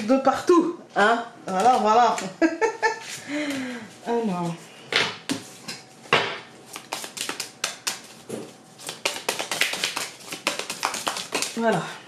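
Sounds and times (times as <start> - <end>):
cards being shuffled: 6.7 - 11.6.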